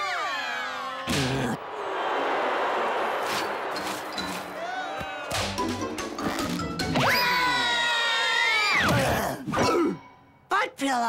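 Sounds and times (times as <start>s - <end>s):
comic music cue: 5.3s - 7.9s.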